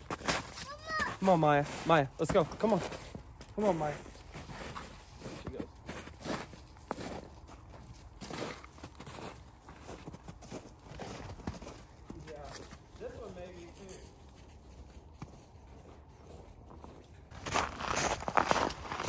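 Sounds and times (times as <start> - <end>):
footsteps crunching in snow: 0.0 - 19.0.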